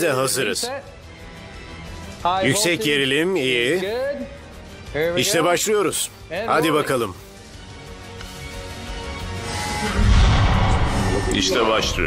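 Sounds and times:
tense documentary music: 0.0s - 12.0s
deep boom: 10.0s - 12.0s
low rumble: 10.0s - 12.0s.

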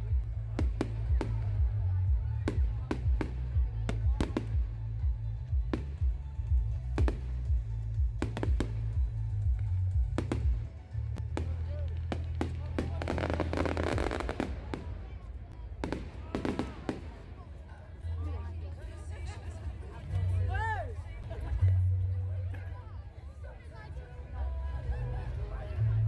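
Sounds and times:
music: 0.0s - 26.0s
voices: 0.0s - 26.0s
fireworks bangs and cracks: 0.1s - 1.7s, 7.0s - 17.4s.

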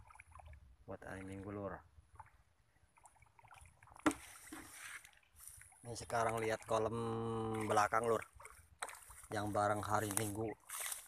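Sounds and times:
fish splashing in water: 0.0s - 0.8s, 1.9s - 11.0s.

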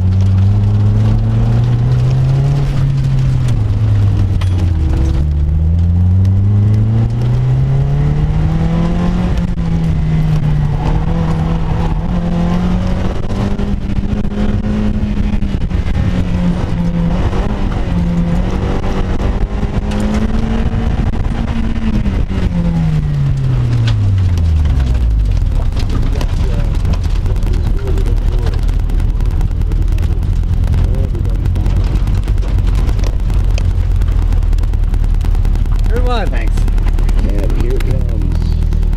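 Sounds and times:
sports car engine revving: 0.0s - 38.9s.

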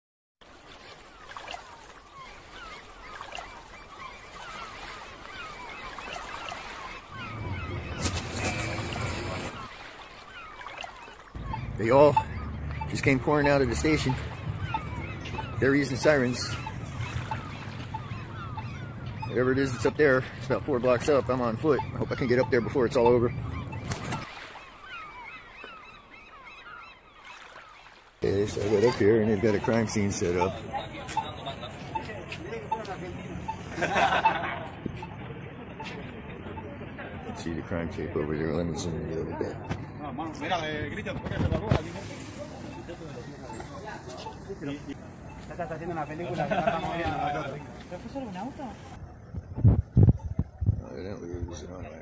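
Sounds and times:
ocean waves: 0.4s - 49.4s
gulls calling: 0.4s - 52.0s
street noise: 7.1s - 9.8s, 11.4s - 24.2s, 28.2s - 52.0s.

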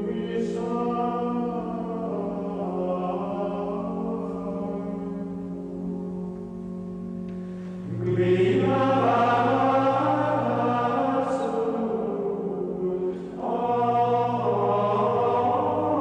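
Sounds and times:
choir chanting in long held notes: 7.8s - 16.0s.

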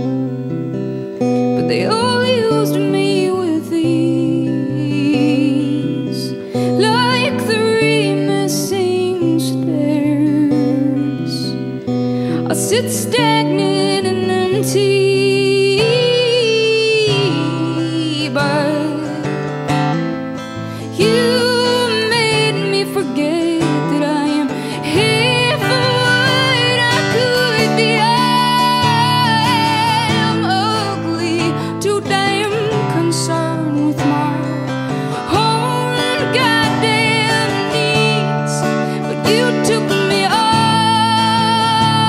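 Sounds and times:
strummed acoustic guitar: 0.0s - 42.0s
woman singing with vibrato: 1.5s - 19.8s, 20.6s - 42.0s.

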